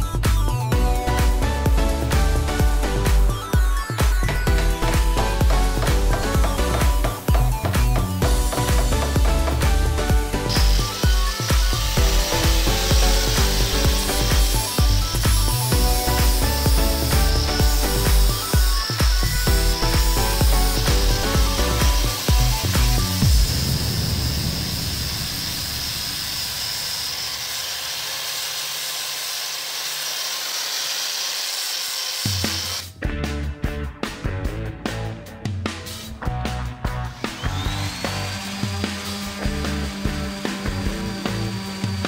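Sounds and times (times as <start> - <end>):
background music with a beat: 0.0 - 23.8, 32.3 - 42.0
angle grinder sanding wood: 2.0 - 32.9, 36.9 - 42.0.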